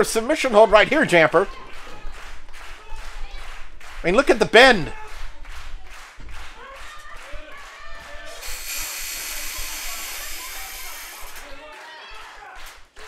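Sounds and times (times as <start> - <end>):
steady high hiss: 8.4 - 11.4.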